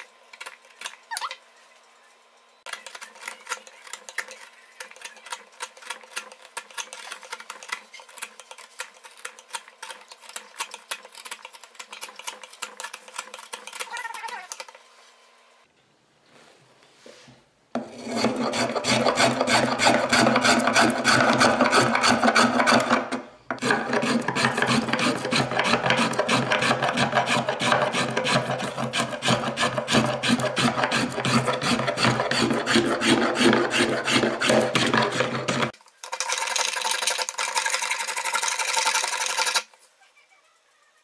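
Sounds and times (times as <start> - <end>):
finger plane shaving wood: 17.8 - 35.8.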